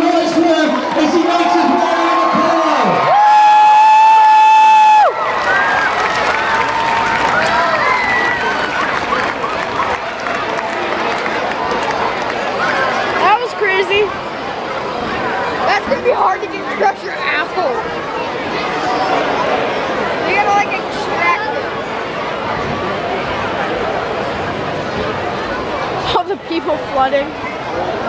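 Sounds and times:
crowd cheering and shouting: 0.0s - 26.3s
whoops: 3.1s - 5.9s.

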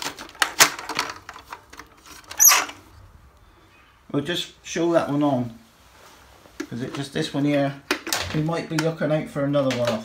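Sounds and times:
plastic toy clicks and knocks: 0.0s - 2.5s.

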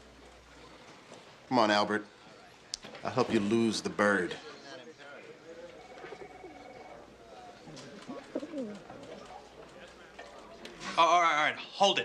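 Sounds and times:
pigeon cooing: 5.8s - 9.2s.

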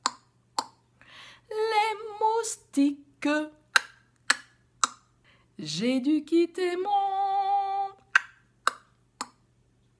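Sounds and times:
tongue clicks: 0.0s - 0.8s, 3.7s - 5.1s, 8.0s - 9.5s.

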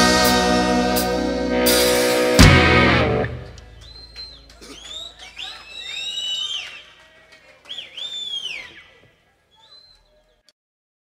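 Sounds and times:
audience whistling: 3.4s - 10.5s.

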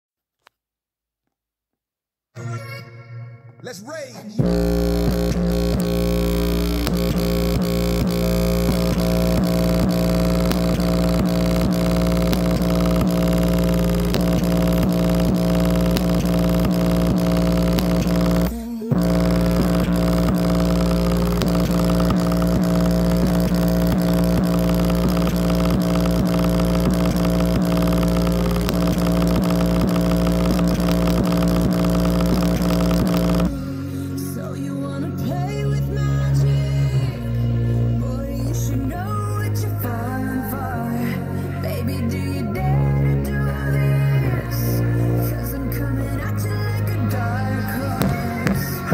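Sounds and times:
speaker playing loud bass drone: 4.4s - 48.9s.

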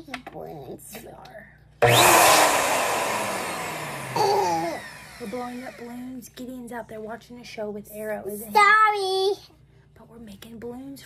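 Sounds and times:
electric balloon pump running: 1.8s - 5.9s.

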